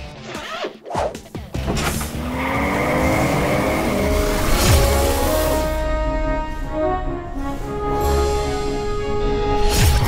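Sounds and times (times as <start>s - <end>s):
car engine revving: 1.8s - 5.8s.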